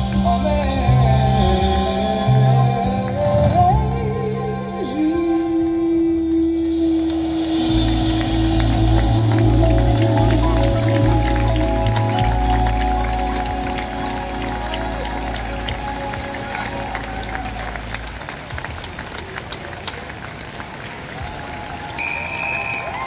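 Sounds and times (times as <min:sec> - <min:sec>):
crowd noise: 0:00.0 - 0:23.0
jazz band held chord: 0:06.6 - 0:18.3
audience applause: 0:06.8 - 0:23.0.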